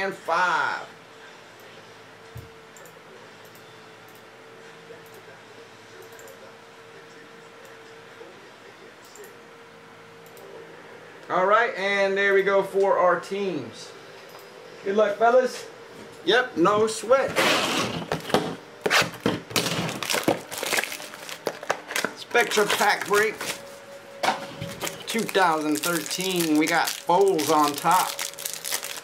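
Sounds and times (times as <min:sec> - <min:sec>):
plastic wrapping crinkling and clicking: 0:19.5 - 0:23.7, 0:24.6 - 0:29.0.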